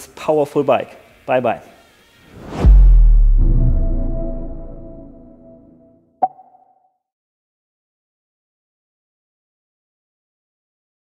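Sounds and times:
outro music: 2.4 - 6.4.

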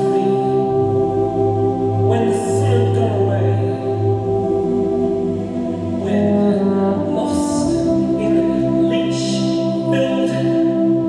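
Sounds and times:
euphonium playing sustained notes: 0.0 - 11.0
recorded accompaniment from speakers: 0.0 - 11.0.

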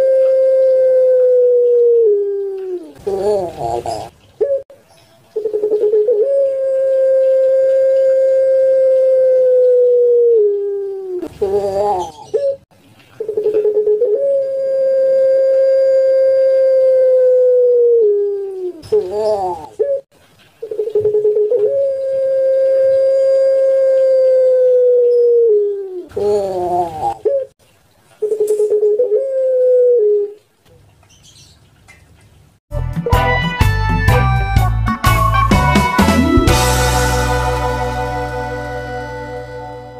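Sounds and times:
dove cooing: 0.0 - 4.6, 5.4 - 27.6, 28.2 - 30.5.

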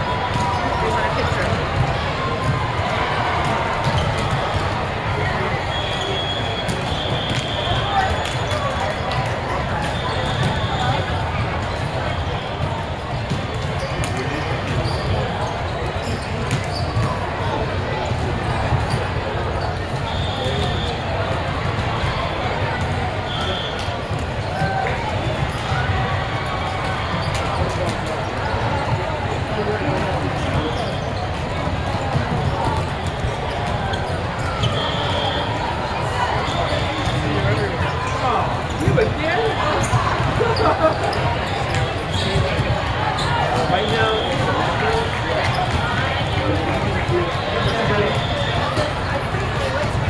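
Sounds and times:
many voices: 0.0 - 50.0.

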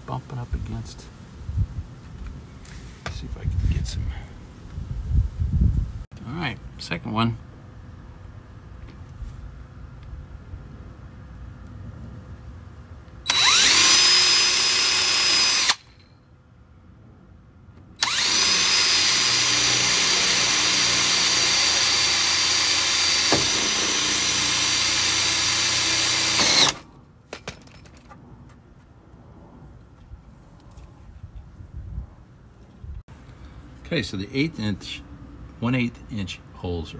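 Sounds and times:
electric drill boring metal: 13.3 - 15.9, 18.0 - 26.8.

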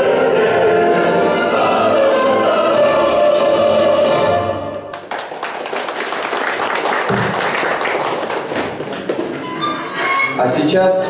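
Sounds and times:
people applauding: 4.9 - 9.6.

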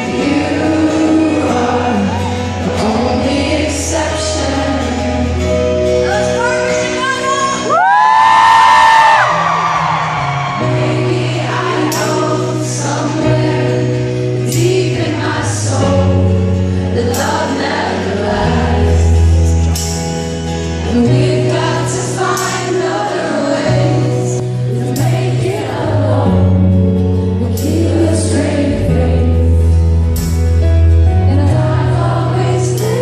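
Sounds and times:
many voices singing along: 0.0 - 5.9, 9.1 - 20.0, 20.8 - 30.0, 31.3 - 33.0
live band playing rock ballad: 0.0 - 33.0
bass notes: 7.8 - 33.0.

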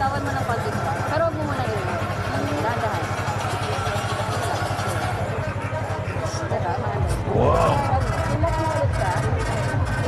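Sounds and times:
motorcycle engine idling: 0.0 - 10.0
voices: 0.0 - 10.0.

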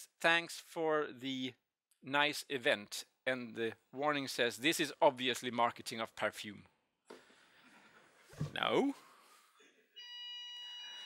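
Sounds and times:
high electronic beep tone: 10.0 - 11.0.

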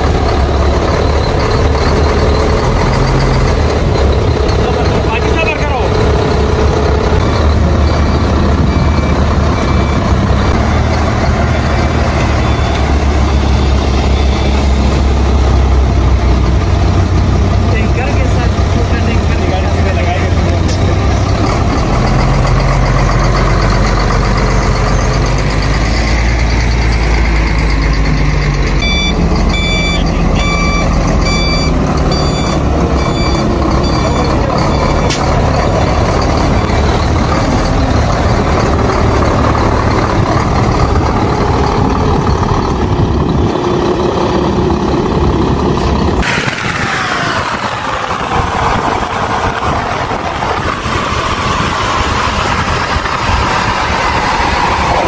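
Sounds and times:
truck diesel engine running: 0.0 - 55.0
reversing alarm beeping: 0.1 - 15.4, 22.0 - 42.8.

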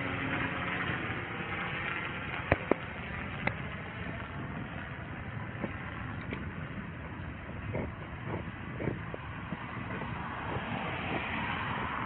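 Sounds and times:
street traffic: 0.0 - 12.0
car passing close by: 9.0 - 12.0.

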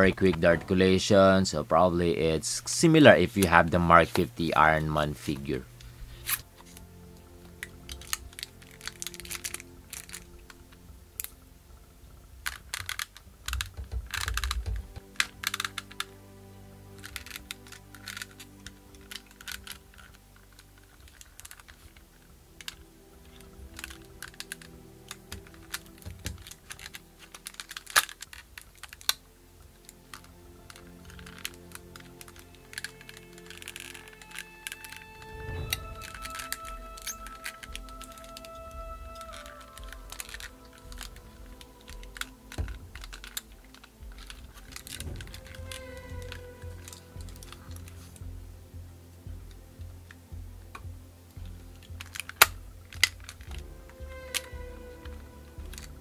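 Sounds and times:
background music: 0.0 - 56.0
small plastic clicks and clacks: 7.5 - 11.4, 12.4 - 16.1, 17.0 - 48.3, 50.1 - 56.0.

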